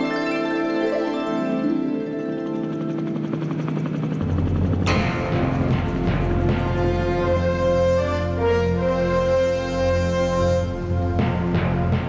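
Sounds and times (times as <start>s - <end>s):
background music: 0.0s - 12.0s
helicopter rotor beating: 0.0s - 12.0s
low drone: 0.0s - 12.0s.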